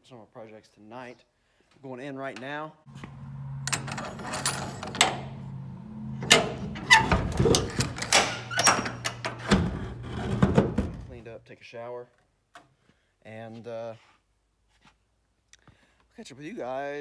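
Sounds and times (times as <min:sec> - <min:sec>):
steady low hum: 0:02.9 - 0:11.2
metal latch clanking: 0:03.0 - 0:11.2.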